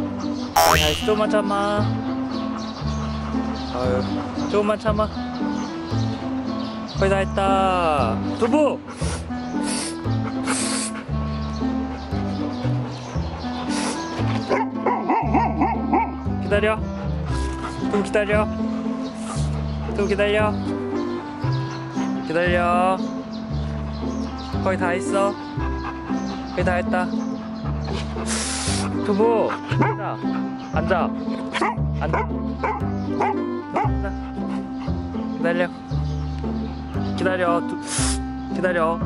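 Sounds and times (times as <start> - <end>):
background music: 0.0 - 39.0
background music with held bass: 0.6 - 1.6
dog barking: 14.5 - 16.2, 29.7 - 30.0, 31.5 - 34.0.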